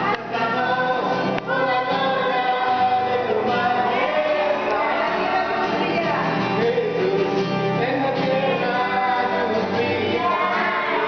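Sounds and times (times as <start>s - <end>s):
acoustic guitar strumming: 0.0s - 11.0s
children and woman singing: 0.0s - 11.0s.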